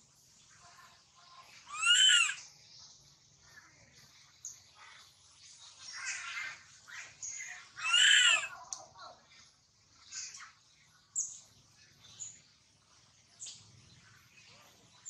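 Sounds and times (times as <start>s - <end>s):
baby monkey crying: 1.6s - 2.4s, 7.8s - 8.6s.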